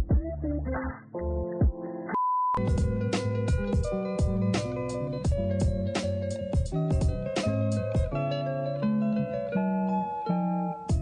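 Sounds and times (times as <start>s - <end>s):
plucked guitar music: 0.0s - 11.0s
short electronic beep: 2.2s - 2.6s.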